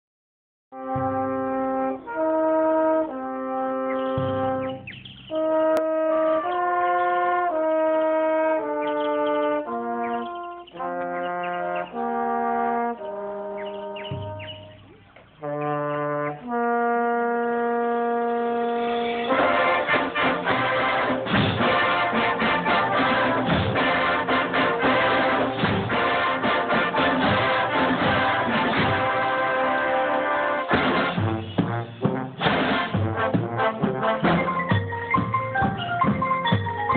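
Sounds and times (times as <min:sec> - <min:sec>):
brass chords: 0:00.7 - 0:36.9
percussion hits: 0:00.9 - 0:01.6, 0:04.1 - 0:05.9, 0:14.0 - 0:15.0, 0:19.3 - 0:29.3, 0:30.7 - 0:36.9.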